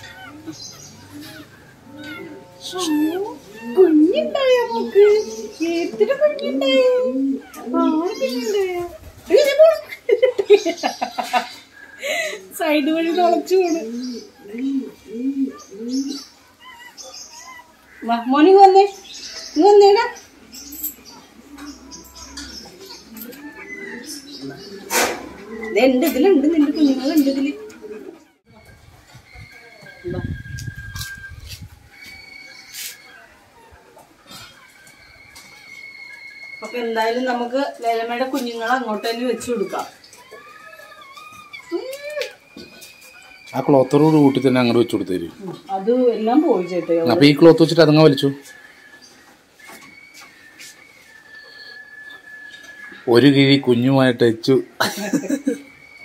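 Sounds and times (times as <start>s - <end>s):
puppy crying: 0.0s - 10.1s, 12.0s - 28.7s, 31.9s - 53.1s
pigeon cooing: 0.0s - 56.0s
woman's voice: 2.5s - 10.0s, 12.4s - 15.4s, 18.0s - 19.0s, 19.6s - 20.2s, 25.6s - 27.7s, 36.6s - 40.0s, 45.4s - 47.2s
faint bird chirps: 38.3s - 56.0s.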